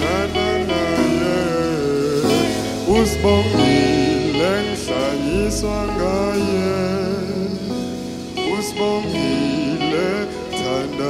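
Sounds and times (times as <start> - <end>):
bass guitar: 0.0 - 11.0
electric guitar: 0.0 - 11.0
keyboard: 0.0 - 11.0
man singing: 0.0 - 11.0.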